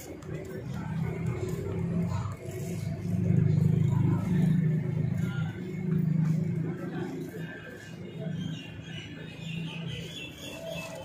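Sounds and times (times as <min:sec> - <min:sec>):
bus engine rumbling: 0:00.0 - 0:08.3.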